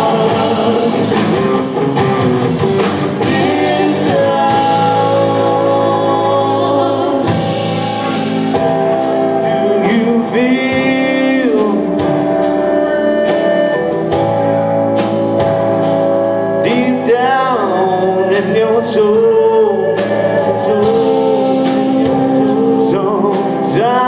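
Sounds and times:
drum beat: 0.0s - 6.0s
strummed rhythm guitar: 0.0s - 6.3s
electric guitar lead: 0.0s - 24.0s.

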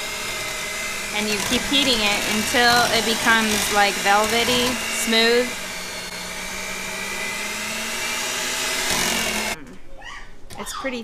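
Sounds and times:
electric hand mixer running: 0.0s - 9.6s.

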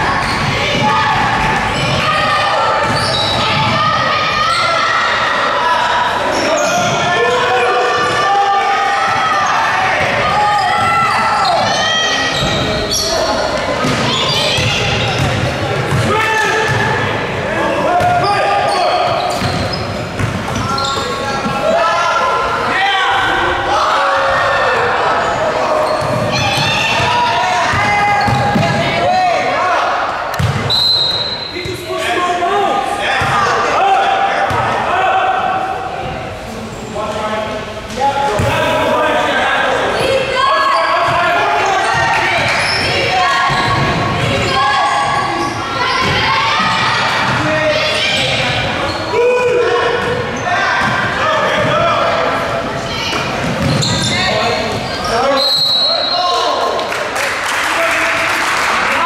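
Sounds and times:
people shouting in echoing hall: 0.0s - 36.7s, 37.7s - 59.0s
basketballs bouncing on wooden floor: 19.2s - 20.7s, 26.0s - 28.8s, 30.4s - 30.6s, 53.2s - 54.2s.

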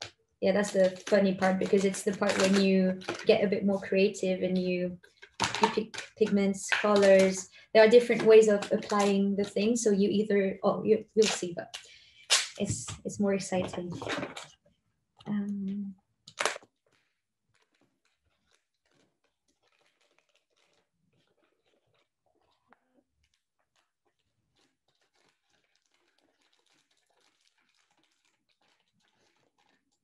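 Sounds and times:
duct tape tearing: 0.0s - 3.3s, 11.2s - 12.6s, 16.3s - 16.7s, 17.5s - 22.1s, 24.5s - 29.8s
plastic crinkling and rustling: 0.0s - 3.6s, 4.8s - 9.3s, 12.6s - 14.6s, 16.3s - 30.0s.

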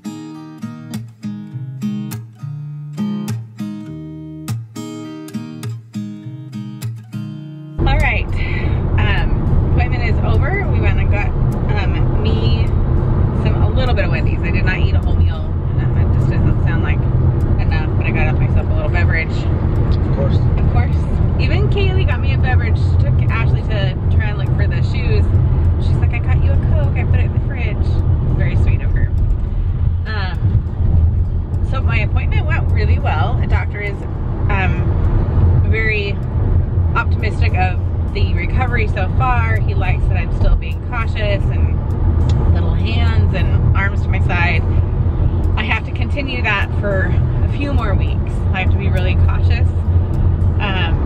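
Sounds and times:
woman talking: 7.8s - 12.7s, 13.4s - 19.5s, 20.3s - 29.1s, 30.1s - 30.5s, 31.6s - 35.0s, 35.6s - 36.2s, 37.0s - 44.7s, 45.5s - 49.8s, 50.6s - 51.0s
road noise rumble: 7.8s - 51.0s.

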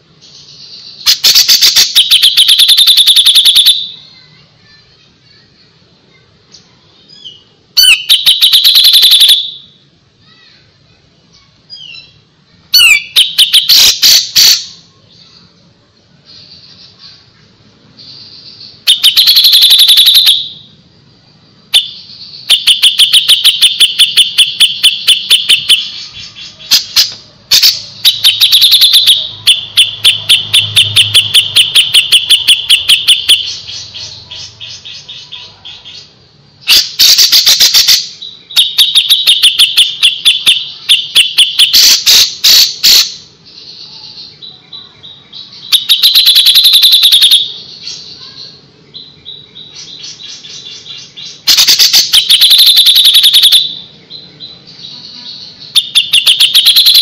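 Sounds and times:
bulbul singing: 0.0s - 5.7s, 6.4s - 10.0s, 11.2s - 15.6s, 17.9s - 57.0s.

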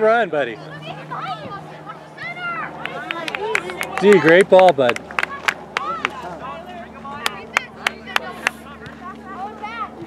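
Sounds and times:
distant voices calling: 0.0s - 10.0s.

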